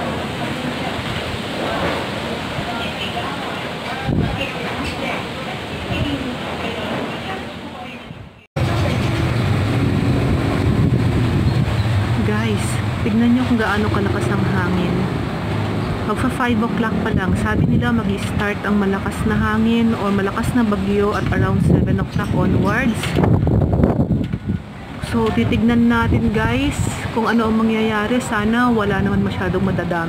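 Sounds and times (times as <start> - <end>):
strong wind buffeting microphone: 0.0 - 30.0.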